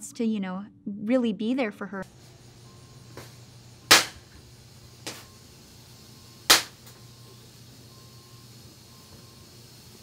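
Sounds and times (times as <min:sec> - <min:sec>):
low steady hum: 0:01.9 - 0:10.0
loud sharp cracks: 0:03.9 - 0:04.3, 0:06.5 - 0:07.0.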